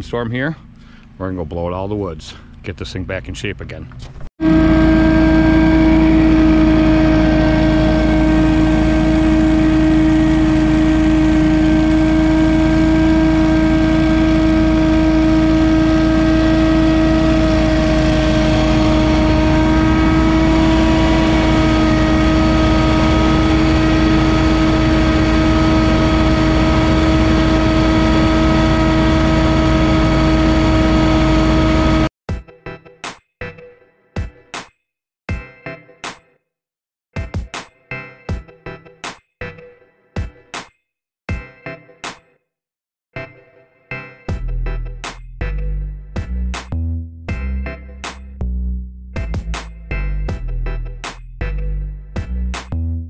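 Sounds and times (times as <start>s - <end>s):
fan whine: 4.4s - 32.1s
leaf blower engine drone: 4.4s - 32.1s.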